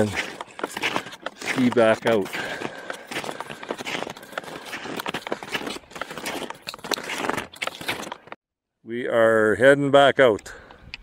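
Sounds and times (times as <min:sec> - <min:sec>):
snowshoes crunching on snow: 0:00.0 - 0:08.3.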